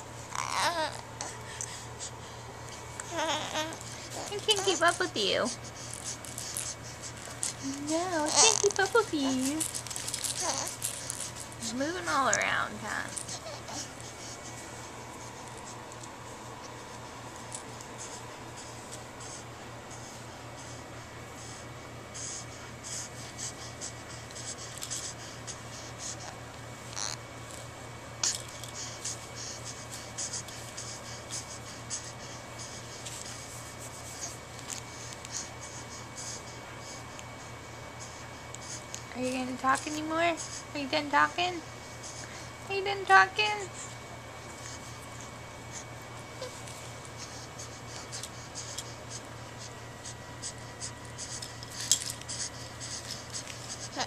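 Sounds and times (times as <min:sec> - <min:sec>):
low steady hum: 0:00.0 - 0:54.0
scratchy rustles: 0:05.8 - 0:11.8.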